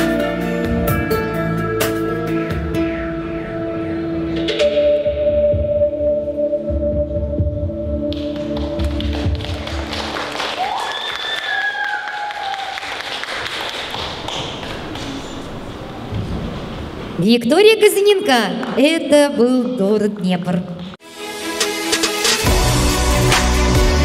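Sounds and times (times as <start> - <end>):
instrumental music with low beats: 0.0 - 10.2, 21.0 - 24.0
audience applause and cheering: 8.2 - 15.8.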